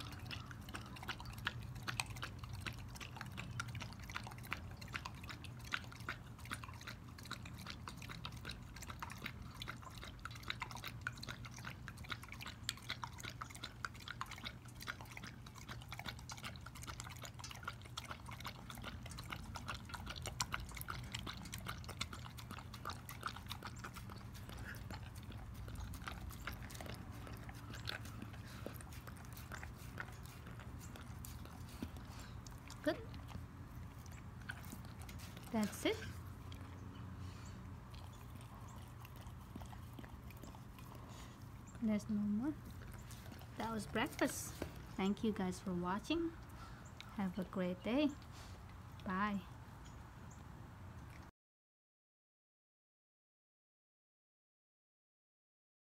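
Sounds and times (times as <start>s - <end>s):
dog lapping milk from metal bowl: 0.0s - 47.8s.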